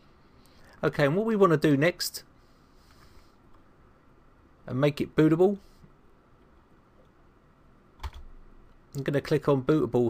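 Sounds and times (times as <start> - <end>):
computer keyboard keystroke: 8.0 - 8.3.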